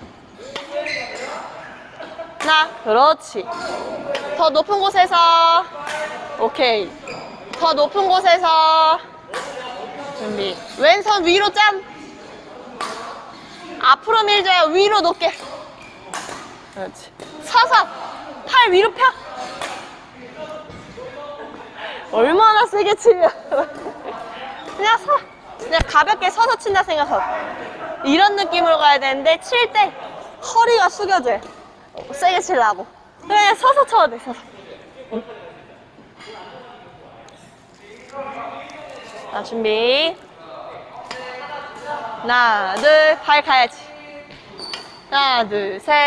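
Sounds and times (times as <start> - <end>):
faint voices in echoing hall: 0.0 - 46.0.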